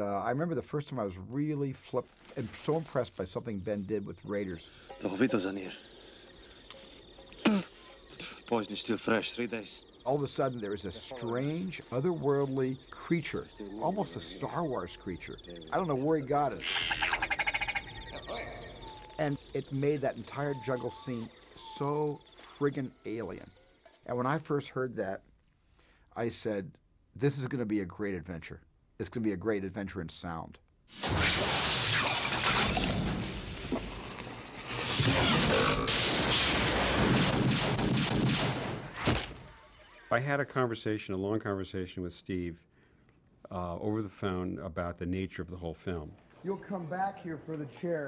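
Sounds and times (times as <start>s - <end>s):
insect chirring: 2.1s - 24.4s, 30.9s - 37.0s
creature high chirp: 16.6s - 19.4s
creature rattling trill: 16.6s - 22.5s.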